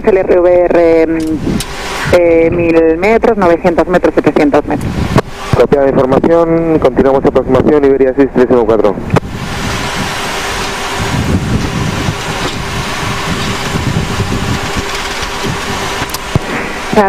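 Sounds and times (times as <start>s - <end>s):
low rumble: 0.0s - 17.0s
rushing hiss: 9.3s - 17.0s.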